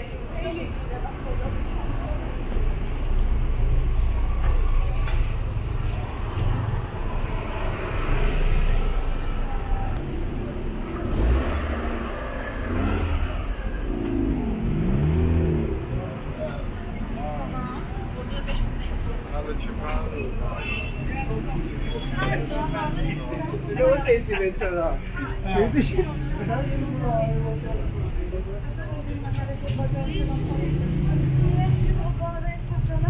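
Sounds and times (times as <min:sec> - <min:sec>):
car engines rumbling: 0:00.0 - 0:33.0
passers-by talking: 0:00.0 - 0:33.0.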